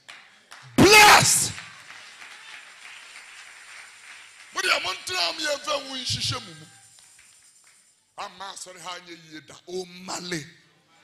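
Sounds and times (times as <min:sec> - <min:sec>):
congregation applauding: 0:00.0 - 0:07.9.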